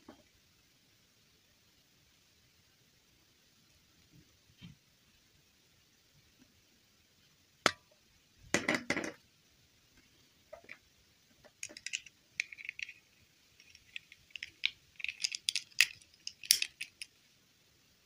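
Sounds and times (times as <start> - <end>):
plastic toys clattering: 11.5 - 17.1
plastic clicks and scrapes: 13.6 - 17.1.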